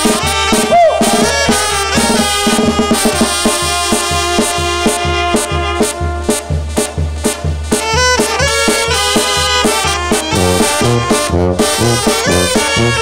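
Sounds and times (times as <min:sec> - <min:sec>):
drums keeping steady beat: 0:00.0 - 0:13.0
trumpets and trombones: 0:00.0 - 0:13.0
tuba bass: 0:00.0 - 0:13.0.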